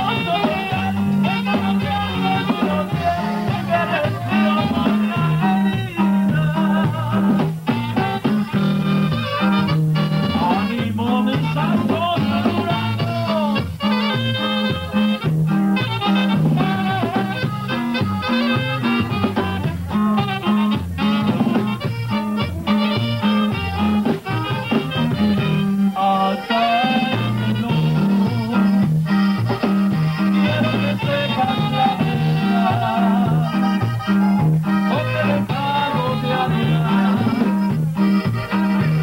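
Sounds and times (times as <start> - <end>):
bass alternating two low notes: 0.0 - 26.0, 27.1 - 39.0
band playing dance tune: 0.0 - 39.0
saxophone: 0.0 - 39.0.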